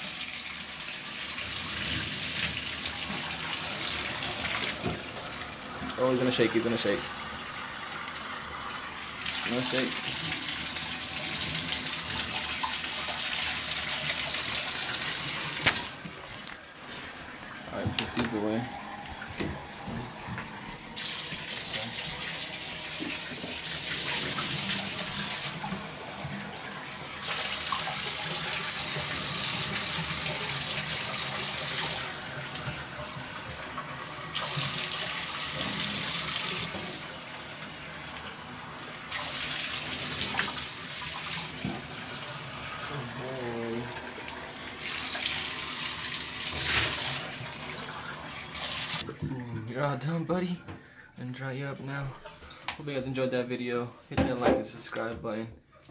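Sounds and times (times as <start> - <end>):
water running from bathtub tap: 0.0 - 55.9.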